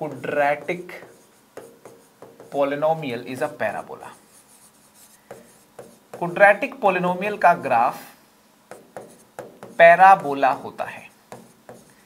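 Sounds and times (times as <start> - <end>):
pen scratching on screen: 0.1 - 2.7, 4.1 - 6.3, 8.7 - 10.6, 11.3 - 12.0.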